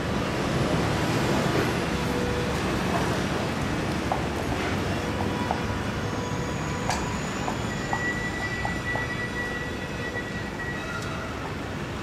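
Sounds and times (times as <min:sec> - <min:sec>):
low rumbling street noise: 0:00.0 - 0:12.0.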